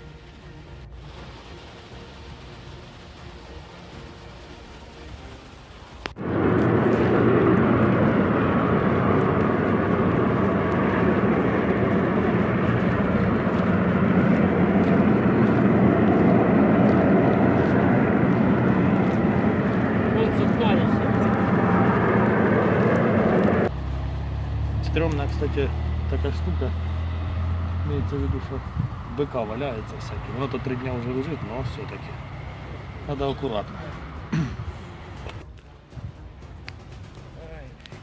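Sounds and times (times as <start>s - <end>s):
vehicle engine drone: 0.0s - 35.5s
rushing air and road noise: 0.0s - 38.0s.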